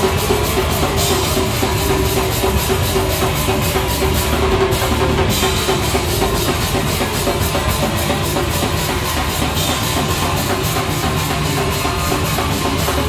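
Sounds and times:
cymbal strokes: 0:00.0 - 0:13.0
hardcore band playing live: 0:00.0 - 0:13.0.

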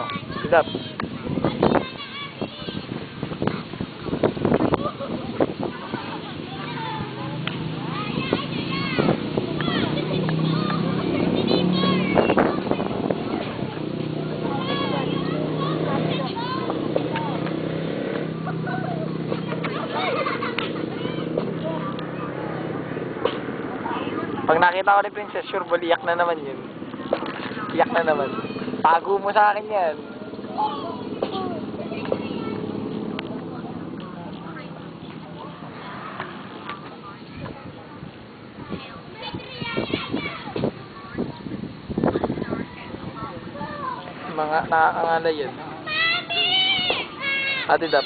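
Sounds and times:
people talking over one another: 0:00.0 - 0:48.0
people talking softly: 0:30.0 - 0:44.4.

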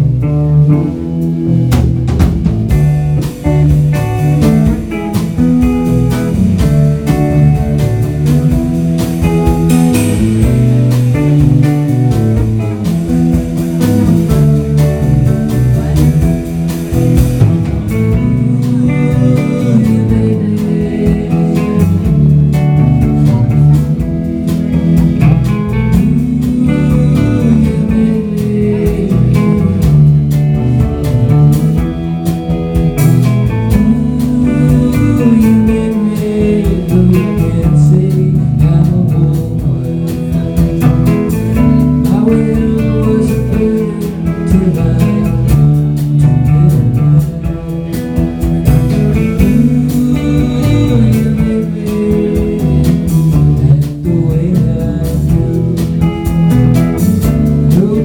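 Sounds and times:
rock band playing live: 0:00.0 - 0:58.0.

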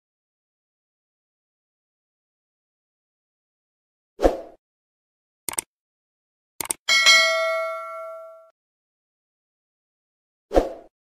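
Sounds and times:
mouse clicks: 0:05.5 - 0:05.7, 0:06.6 - 0:06.8
bright bell-like ding: 0:06.9 - 0:08.5.

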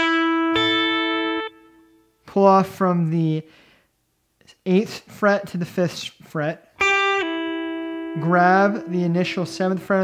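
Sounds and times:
clean electric guitar notes: 0:00.0 - 0:02.1, 0:06.8 - 0:10.0.

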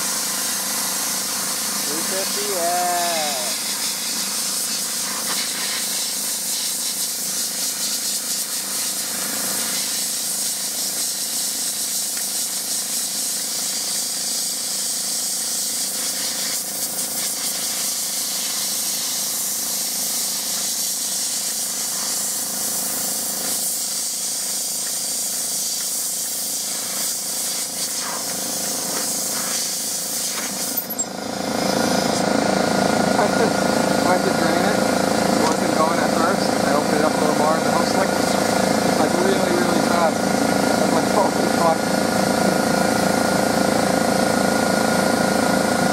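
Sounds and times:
sandblaster nozzle hissing: 0:00.0 - 0:30.8, 0:31.6 - 0:41.8
low mechanical running noise: 0:00.0 - 0:45.9.

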